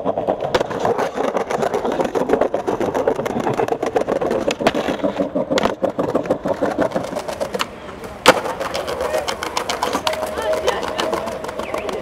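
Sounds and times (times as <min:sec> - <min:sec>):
skateboard clacks: 0:00.0 - 0:12.0
skateboard wheels rolling on tiles: 0:00.0 - 0:12.0.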